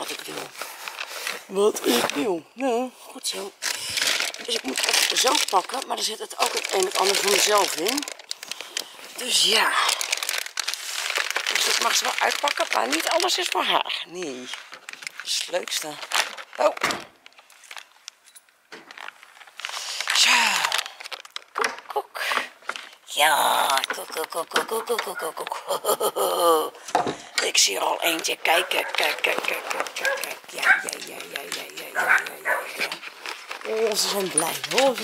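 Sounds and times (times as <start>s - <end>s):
rustling handling noise: 0.0s - 2.4s, 3.2s - 21.9s, 27.4s - 35.0s
dogs barking and yipping: 28.5s - 31.0s, 31.9s - 32.8s.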